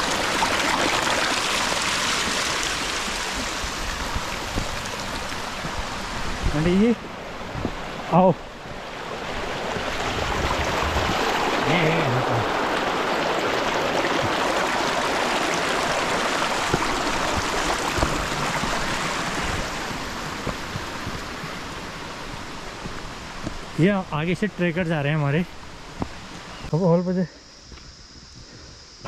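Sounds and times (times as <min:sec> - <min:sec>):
stream rushing over rocks: 0:00.0 - 0:26.5.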